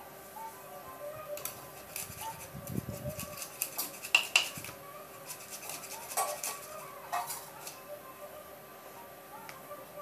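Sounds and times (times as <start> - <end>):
knife scraping and slicing fish: 3.2 - 4.5, 5.2 - 7.4.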